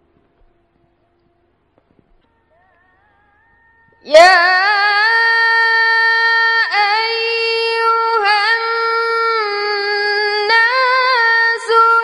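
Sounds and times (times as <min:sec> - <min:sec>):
woman chanting melodically: 0:02.4 - 0:12.0.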